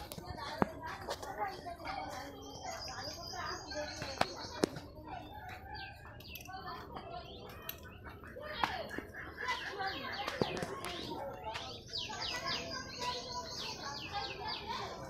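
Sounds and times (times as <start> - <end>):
faint human voices: 0.0 - 15.0
small birds chirping: 0.0 - 15.0.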